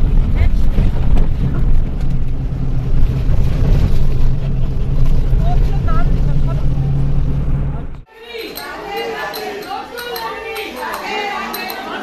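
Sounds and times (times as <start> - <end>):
bus engine and road rumble: 0.0 - 8.1
faint voices: 5.4 - 12.0.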